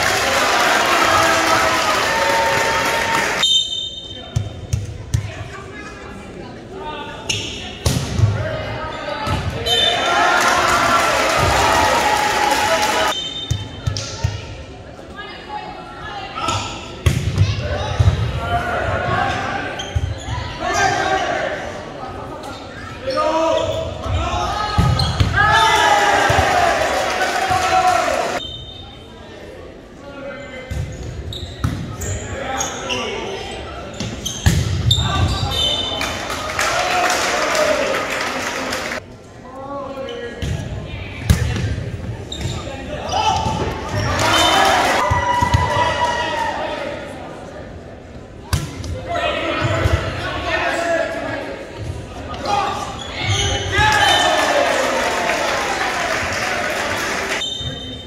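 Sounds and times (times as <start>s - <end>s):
people shouting and cheering: 0.0s - 3.4s, 9.6s - 13.2s, 23.1s - 28.4s, 34.9s - 39.0s, 43.0s - 47.2s, 52.3s - 58.0s.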